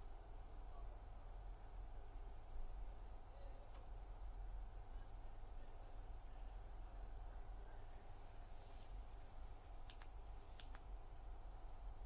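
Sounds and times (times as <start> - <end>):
faint click: 9.8 - 10.9.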